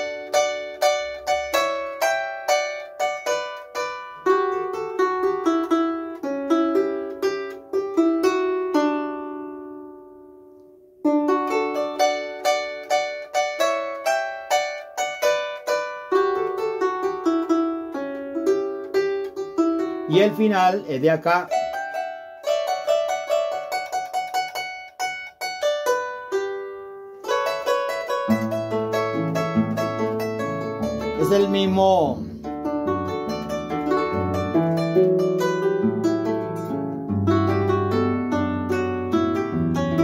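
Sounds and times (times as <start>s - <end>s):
harp plucked notes: 0.0s - 40.0s.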